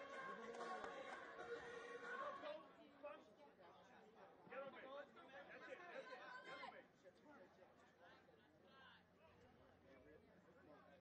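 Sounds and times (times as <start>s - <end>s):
spectators chattering: 0.0s - 2.6s.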